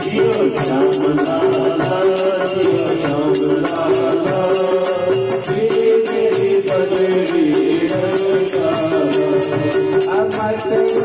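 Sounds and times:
hand cymbals struck: 0.0 - 11.0
voices singing slow melody: 0.0 - 11.0.

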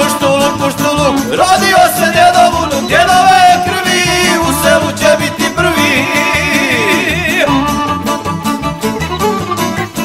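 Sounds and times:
plucked string rhythm: 0.0 - 10.0.

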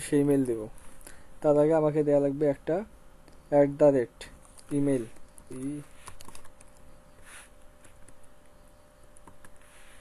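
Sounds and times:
keyboard typing: 4.4 - 7.0, 7.8 - 9.7.

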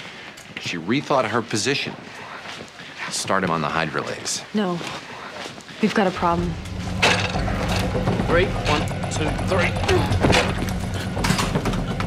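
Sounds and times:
low steady drone: 6.2 - 12.0
knocks and bumps of bodies: 10.0 - 12.0.

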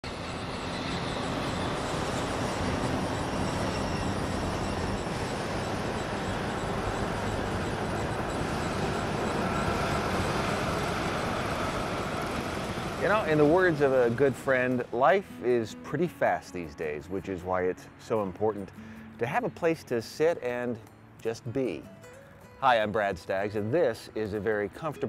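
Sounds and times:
dense road traffic: 0.0 - 15.6, 16.2 - 22.4.

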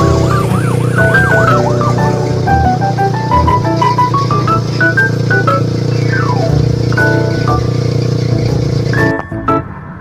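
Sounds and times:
melody of short stepped notes: 0.0 - 7.9, 8.5 - 9.8
steady low drone: 0.0 - 9.0.

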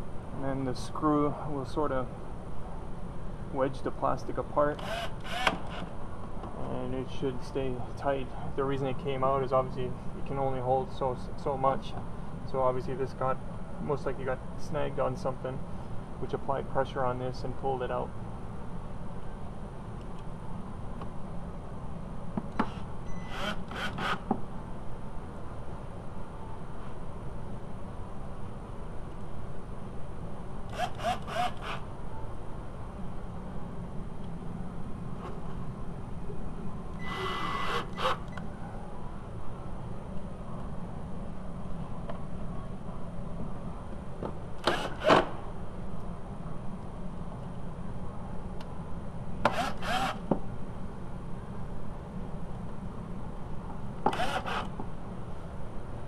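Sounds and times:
cordless drill driving screws: 4.8 - 5.9, 22.6 - 24.2, 30.7 - 31.8, 37.0 - 38.3, 44.6 - 45.3, 49.4 - 50.2, 54.1 - 54.7.

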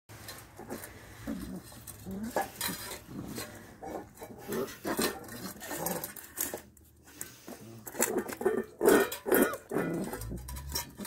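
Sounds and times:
puppies eating from metal bowls: 0.1 - 11.0
puppy low vocal sound: 0.6 - 6.3.

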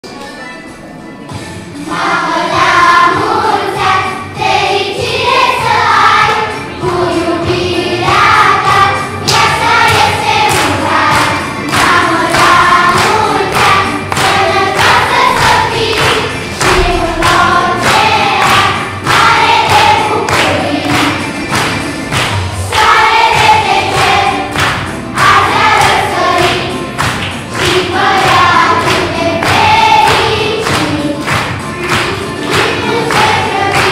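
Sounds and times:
children's choir singing: 0.1 - 33.9
steady beat: 1.3 - 33.9.

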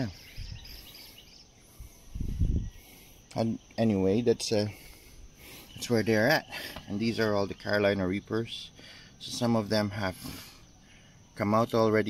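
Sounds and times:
faint chirps: 0.0 - 12.0.

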